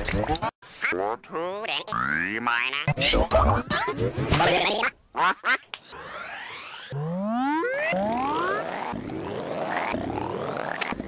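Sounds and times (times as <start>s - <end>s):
pitch-shifted cartoon voice: 0.6s - 6.2s.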